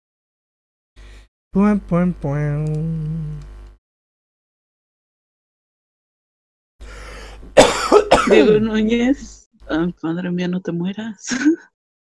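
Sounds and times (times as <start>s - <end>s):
person coughing: 7.6s - 8.8s.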